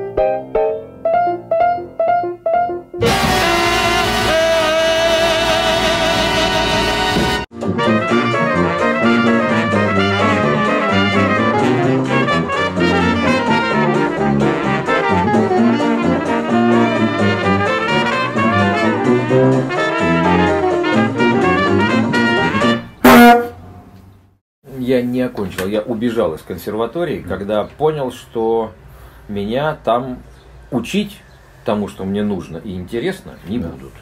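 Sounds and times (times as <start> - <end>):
jazz music with brass: 3.0 - 23.6.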